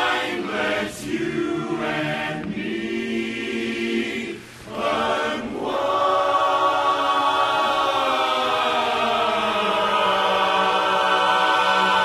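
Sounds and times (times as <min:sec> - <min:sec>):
men's chorus singing a cappella: 0:00.0 - 0:12.0.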